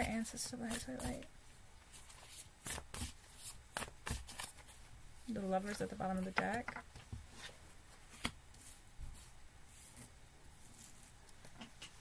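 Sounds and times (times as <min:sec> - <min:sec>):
cards being handled: 0:01.9 - 0:04.8.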